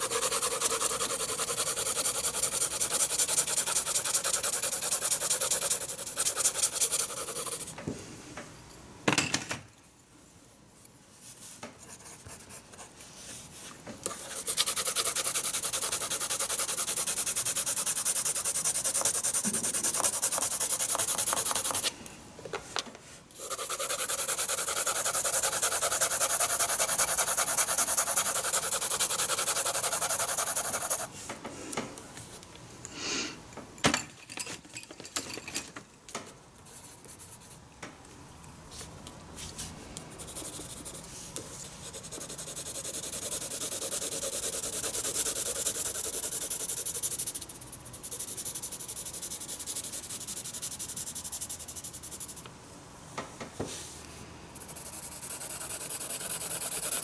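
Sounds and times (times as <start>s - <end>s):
pencil scratching on paper: 0.0s - 7.8s, 11.8s - 13.0s, 14.1s - 21.9s, 23.4s - 31.1s, 40.2s - 52.4s, 54.6s - 57.0s.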